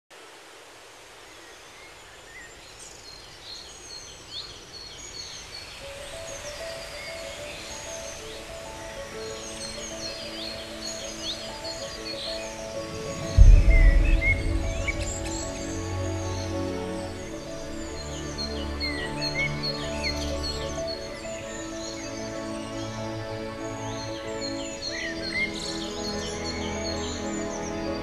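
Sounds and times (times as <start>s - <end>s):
birds chirping: 1.5s - 28.0s
gentle music: 3.7s - 28.0s
deep boom: 13.0s - 16.4s.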